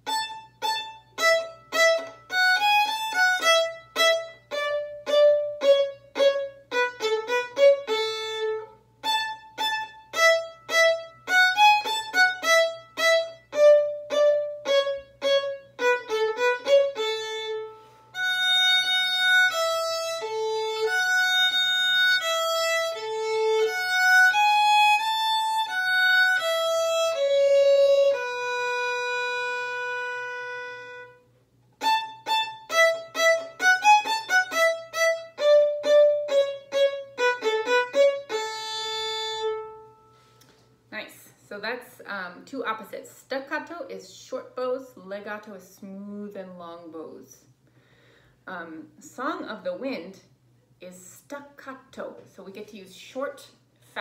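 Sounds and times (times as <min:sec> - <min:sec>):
solo violin melody: 0:00.0 - 0:40.3.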